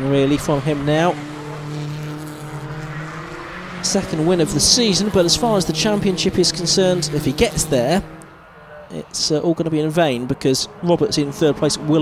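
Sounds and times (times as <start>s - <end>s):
race car engines running: 0.0s - 12.0s.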